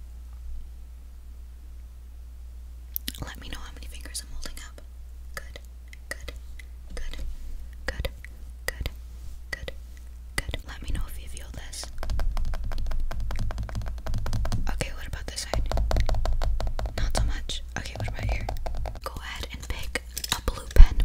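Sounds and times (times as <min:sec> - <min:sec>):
woman whispering: 0:03.1 - 0:07.2, 0:07.8 - 0:09.8, 0:10.4 - 0:11.9, 0:14.7 - 0:15.6, 0:17.0 - 0:21.0
rapid small clicks: 0:11.8 - 0:20.9.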